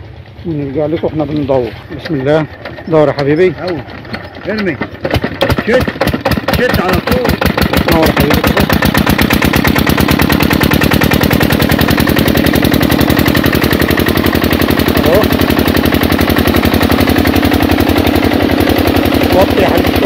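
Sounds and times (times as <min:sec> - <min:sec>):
diesel engine running: 0:00.0 - 0:20.0.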